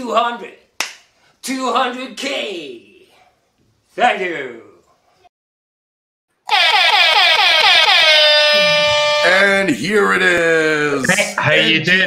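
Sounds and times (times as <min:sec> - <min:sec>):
electronic horn sound effect: 0:06.5 - 0:09.6.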